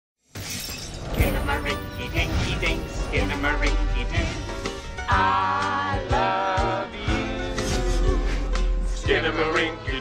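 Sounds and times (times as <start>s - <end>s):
crashing sound effect: 0.3s - 5.1s
intro music: 1.2s - 10.0s.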